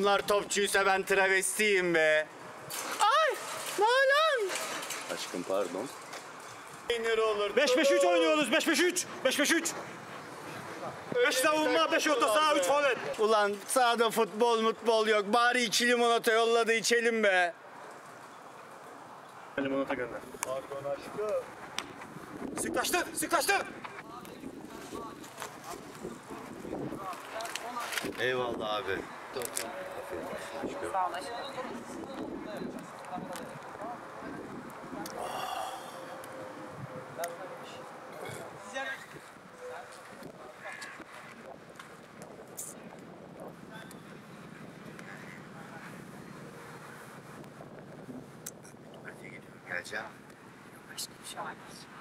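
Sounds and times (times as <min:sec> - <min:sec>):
outdoor background noise: 0:00.0 - 0:52.0
faint voices talking: 0:22.5 - 0:48.0.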